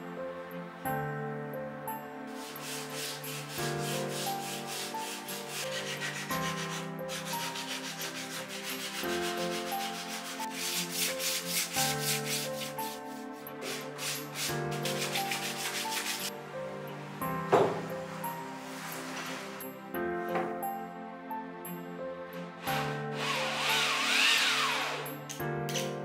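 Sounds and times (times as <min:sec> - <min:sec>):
soft instrumental music: 0:00.0 - 0:26.0
sanding block rubbing wood: 0:02.3 - 0:16.3, 0:22.8 - 0:25.0.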